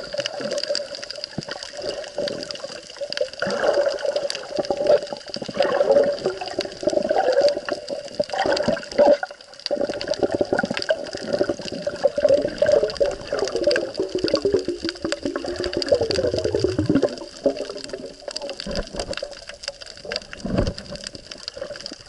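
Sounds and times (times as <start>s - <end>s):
crackle of fine clicks: 0.0s - 22.0s
underwater water rushing: 0.0s - 22.0s.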